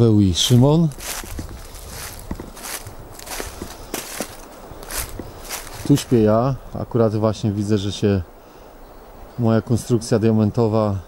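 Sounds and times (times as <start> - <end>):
footsteps crunching on dry leaves: 0.0 - 6.4.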